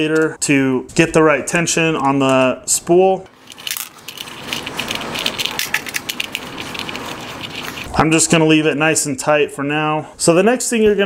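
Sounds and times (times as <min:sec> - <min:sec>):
small clicks and rattles: 0:03.4 - 0:07.9.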